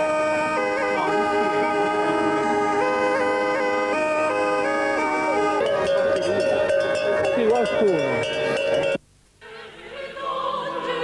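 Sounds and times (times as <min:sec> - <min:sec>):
pipe music drone: 0:00.0 - 0:09.0
small bells clanking: 0:05.6 - 0:09.0.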